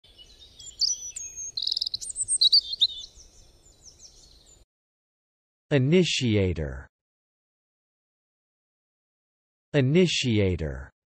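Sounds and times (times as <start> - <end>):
songbirds chirping and singing: 0.0 - 4.6.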